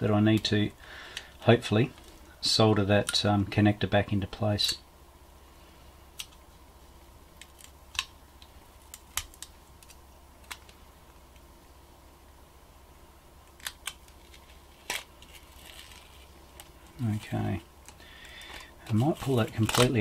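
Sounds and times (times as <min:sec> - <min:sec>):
low steady hum: 0:00.0 - 0:20.0
foil crinkling: 0:13.6 - 0:20.0.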